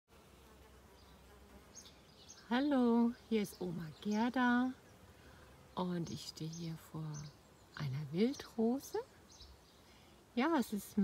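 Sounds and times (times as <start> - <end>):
bees buzzing: 0.1 - 11.0.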